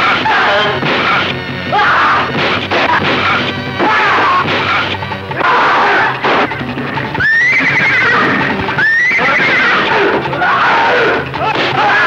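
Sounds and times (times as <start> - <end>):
film background music: 0.0 - 12.0
horse neighing: 1.7 - 11.8.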